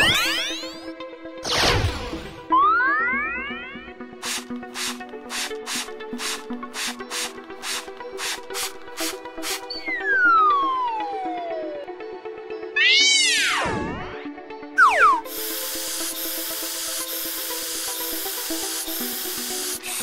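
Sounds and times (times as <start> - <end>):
cartoon sound effects: 0.0 - 0.8, 12.8 - 14.2, 14.8 - 15.3
light background music: 0.0 - 20.0
spray nozzle hissing: 4.2 - 9.6, 15.2 - 20.0.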